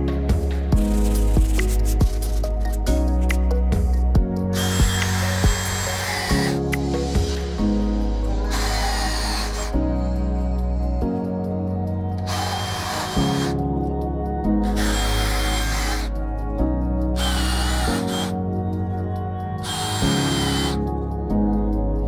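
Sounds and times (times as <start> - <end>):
background music: 0.0 - 22.0
cordless drill boring into wood: 4.6 - 6.6, 8.4 - 9.8, 12.2 - 13.6, 14.6 - 16.2, 17.2 - 18.3, 19.6 - 20.8.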